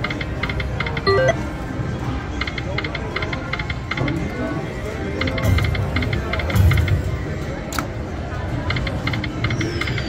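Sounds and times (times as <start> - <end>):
low steady background din: 0.0 - 10.0
slot machine chiming ticks: 1.0 - 1.4.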